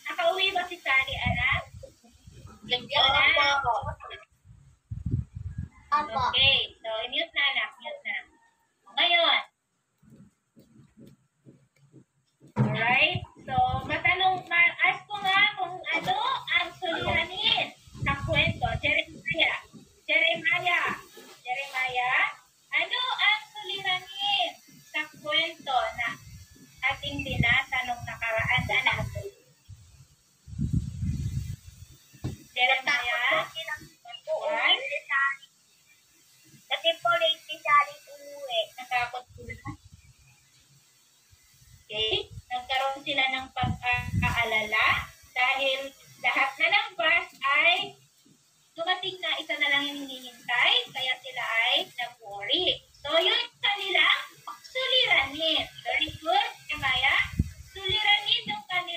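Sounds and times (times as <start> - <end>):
voices through laptop speaker: 0.0 - 4.4, 5.0 - 29.5, 32.2 - 35.5, 36.6 - 40.0, 41.9 - 48.0, 48.8 - 58.9.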